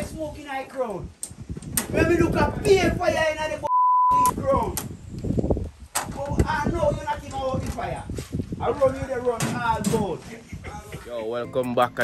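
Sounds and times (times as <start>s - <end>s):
men talking: 1.9s - 4.8s, 6.0s - 12.0s
censor bleep tone: 3.7s - 4.4s.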